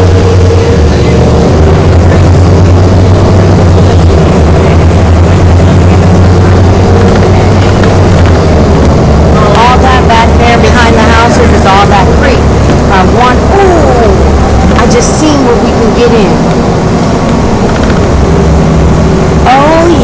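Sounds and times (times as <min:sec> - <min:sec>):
bus engine and road drone: 0:00.0 - 0:20.0
person speaking: 0:09.3 - 0:16.4.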